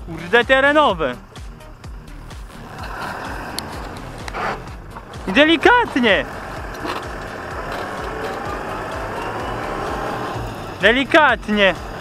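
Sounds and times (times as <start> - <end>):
tractor engine running: 0.0 - 12.0
plough cutting through sod: 2.4 - 12.0.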